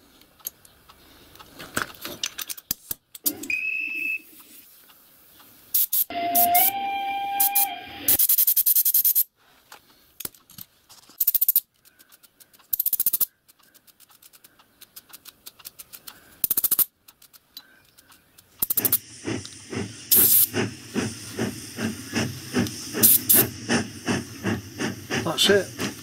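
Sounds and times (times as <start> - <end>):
hissing bursts: 18.4 - 26.0.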